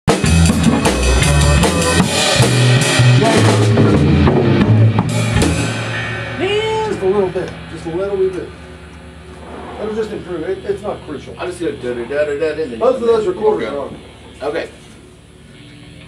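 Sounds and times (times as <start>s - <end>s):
rock band playing loud: 0.1s - 16.0s
low amplifier hum: 0.4s - 16.0s.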